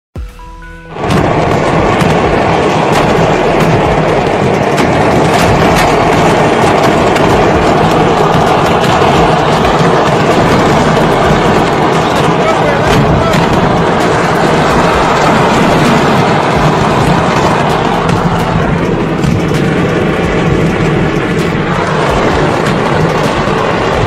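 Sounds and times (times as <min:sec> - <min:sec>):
fireworks crackling and banging: 0:00.9 - 0:24.0.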